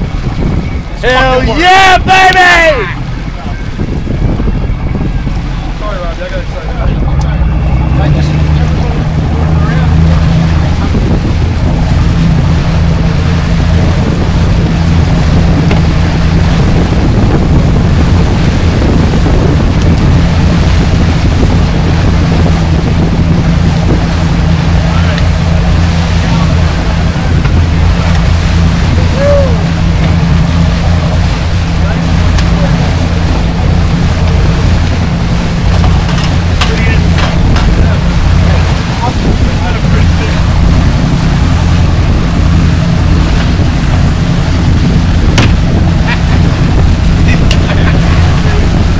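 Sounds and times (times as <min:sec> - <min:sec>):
boat engines droning: 0:00.0 - 0:48.9
boat wake washing: 0:00.0 - 0:48.9
wind rushing: 0:00.0 - 0:48.9.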